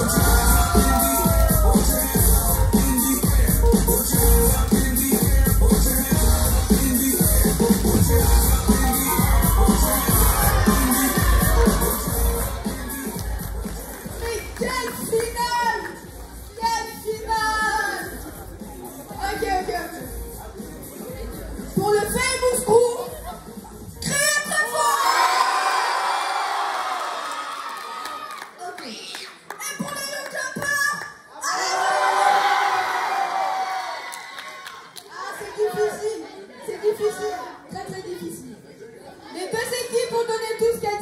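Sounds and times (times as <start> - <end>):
children cheering and shouting: 0.0 - 3.4, 8.5 - 15.9, 24.1 - 28.4.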